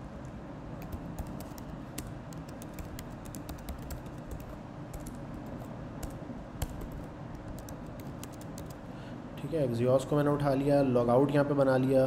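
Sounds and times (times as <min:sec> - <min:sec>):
typing on computer keyboard: 0:00.8 - 0:08.8.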